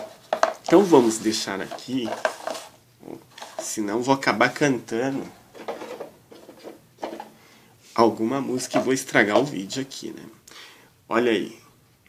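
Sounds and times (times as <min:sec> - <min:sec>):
plastic cups knocking on table: 0:00.0 - 0:02.6, 0:05.5 - 0:07.4, 0:08.6 - 0:09.7
faint rubbing: 0:00.0 - 0:04.1.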